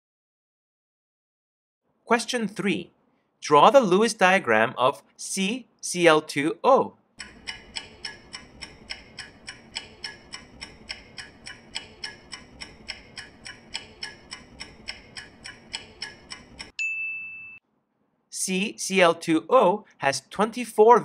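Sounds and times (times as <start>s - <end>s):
countdown timer ticking: 7.2s - 16.8s.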